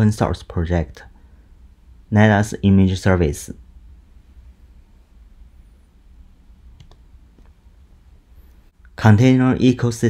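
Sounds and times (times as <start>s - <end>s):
low hum: 1.0s - 9.0s
faint clicks: 6.8s - 7.6s.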